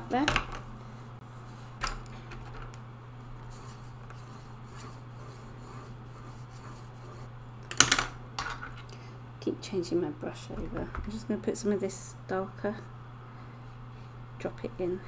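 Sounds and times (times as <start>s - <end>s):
low steady hum: 0.0s - 15.0s
paintbrush strokes: 3.4s - 7.3s.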